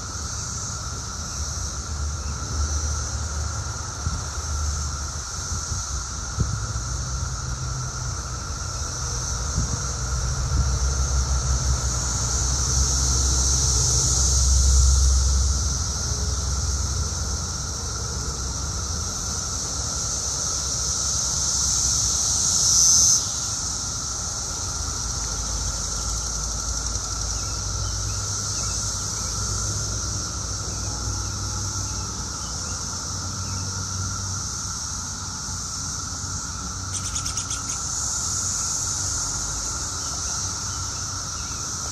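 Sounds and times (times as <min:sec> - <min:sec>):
cicadas chorus: 0:00.0 - 0:41.9
close cicada buzzing: 0:00.0 - 0:41.9.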